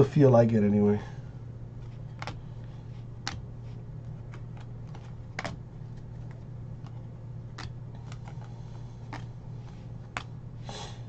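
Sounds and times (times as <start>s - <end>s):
low hum: 0.0s - 11.0s
trading cards flipping and sliding: 1.8s - 10.4s.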